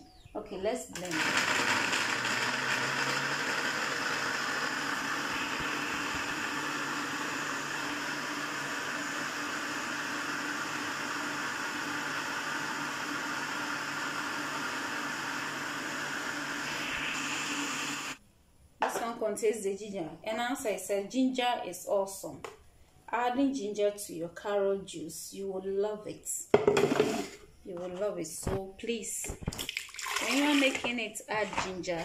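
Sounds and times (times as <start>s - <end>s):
electric blender running: 1.0s - 18.2s.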